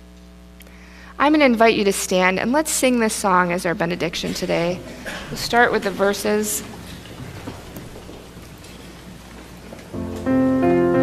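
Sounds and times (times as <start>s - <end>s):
crowd rustling and shuffling: 4.0s - 11.0s.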